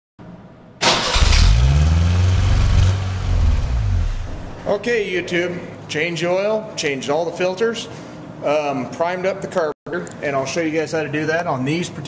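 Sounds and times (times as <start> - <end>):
car engine exhaust: 1.1 - 4.7.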